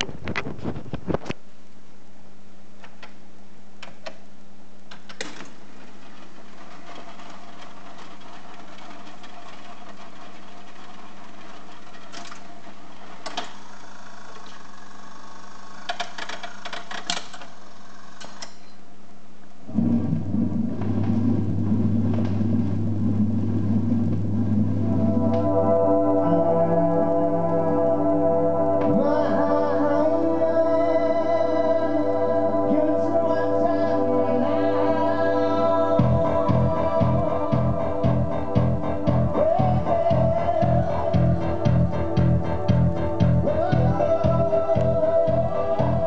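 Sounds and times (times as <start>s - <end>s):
record changer clicks and rattles: 4.8s - 14.6s, 15.8s - 17.6s
jukebox mechanism humming: 4.8s - 18.9s
bass-heavy record playing: 19.7s - 46.0s.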